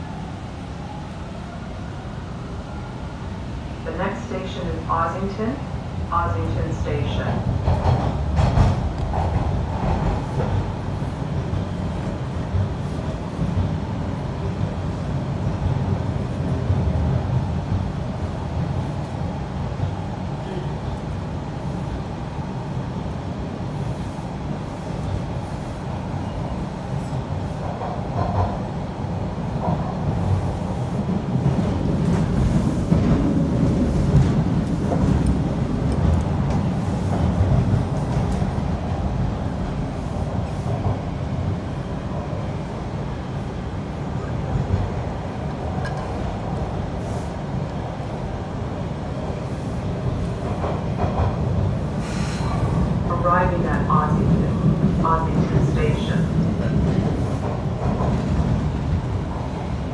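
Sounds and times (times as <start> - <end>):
subway train wheels rumbling: 0.0 - 59.9.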